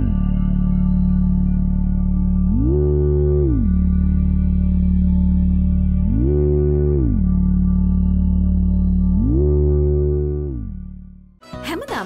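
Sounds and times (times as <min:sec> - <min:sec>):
low drone of held tones: 0:00.0 - 0:11.4.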